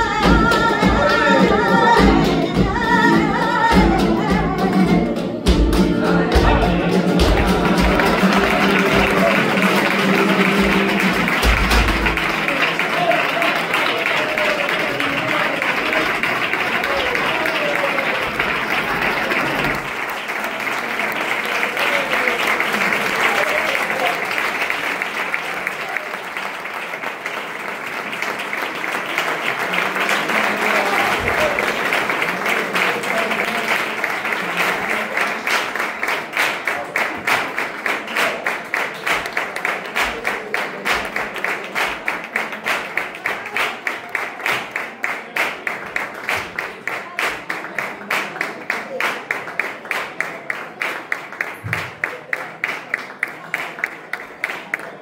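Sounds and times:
audience applauding: 0.0s - 55.0s
rhythmic clapping in unison: 0.0s - 55.0s.

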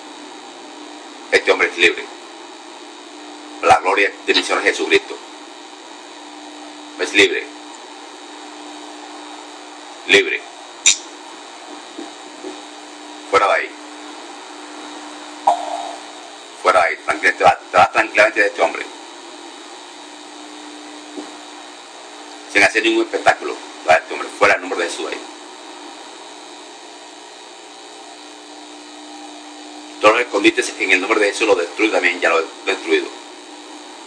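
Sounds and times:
background hum and hiss: 0.0s - 34.0s.

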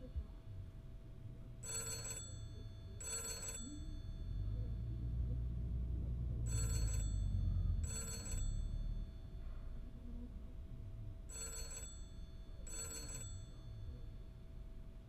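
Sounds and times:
telephone bell ringing: 1.6s - 4.8s, 6.5s - 9.5s, 11.3s - 14.1s
low rumble: 4.4s - 7.9s.

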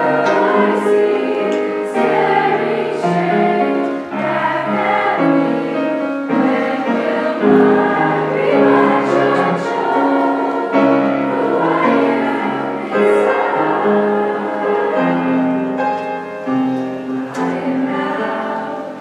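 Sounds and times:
children's choir singing: 0.0s - 19.0s.

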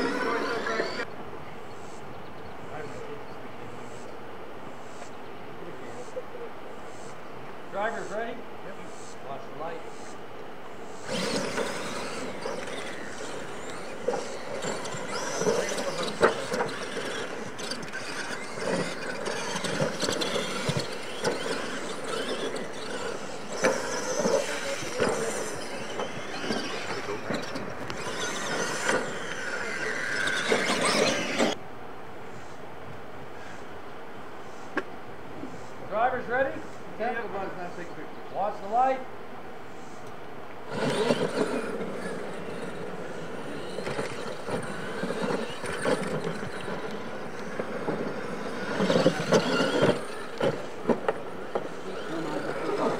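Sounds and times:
toy truck motors whining: 0.0s - 1.1s, 10.8s - 31.6s, 40.0s - 52.9s
toy trucks landing knocks: 11.1s - 31.6s, 43.6s - 52.9s.

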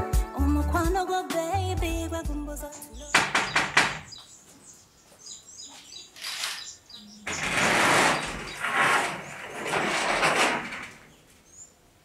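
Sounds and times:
birds chirping: 2.9s - 9.7s, 11.0s - 11.9s
knocks on glass door: 3.1s - 4.2s
door scraping open: 6.2s - 11.3s.

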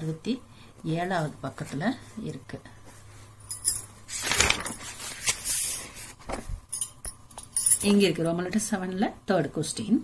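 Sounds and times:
paper pages rustling: 4.1s - 6.6s.

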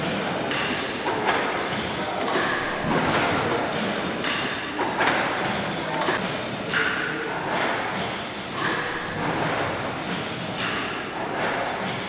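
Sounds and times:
steam engine clattering rhythmically: 0.0s - 12.0s.

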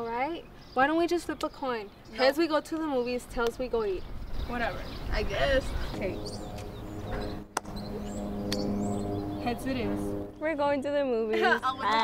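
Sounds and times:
held low musical tone: 5.9s - 11.0s.

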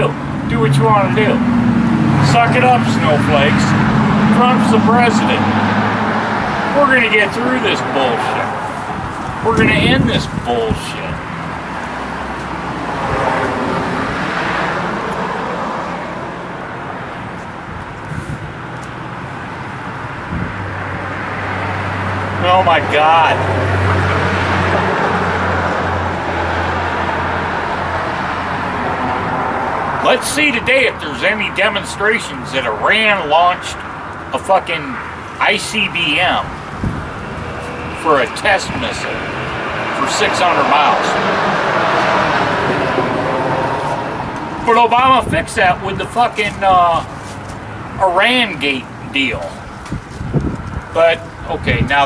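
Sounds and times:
vehicle engine humming: 0.0s - 52.0s
wind noise on microphone: 8.6s - 11.8s, 17.5s - 18.8s, 20.1s - 22.0s, 36.4s - 37.9s, 41.4s - 46.0s, 49.6s - 52.0s.

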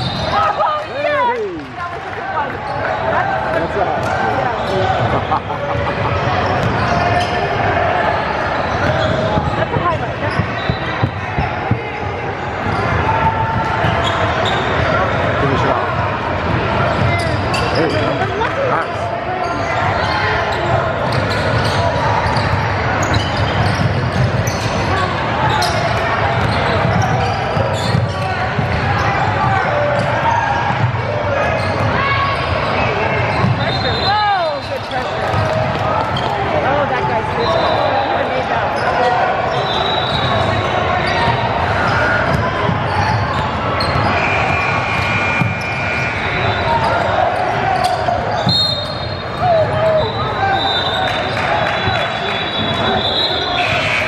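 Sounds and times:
people chattering and calling: 0.0s - 54.0s.

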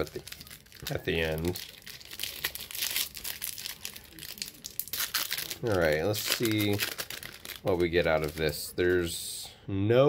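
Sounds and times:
foil wrapper crinkling and tearing: 0.0s - 9.1s.

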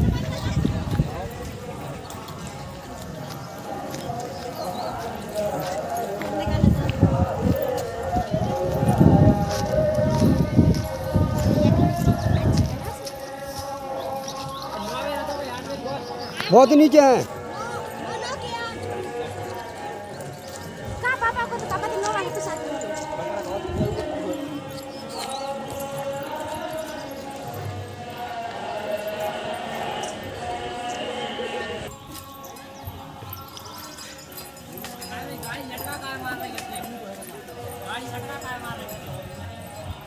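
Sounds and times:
footsteps on stony path: 0.0s - 31.2s, 31.9s - 40.0s
people's voices: 0.0s - 40.0s.

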